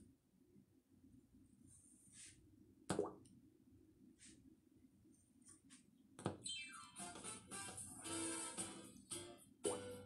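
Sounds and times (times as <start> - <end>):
faint low room noise: 0.0 - 10.0.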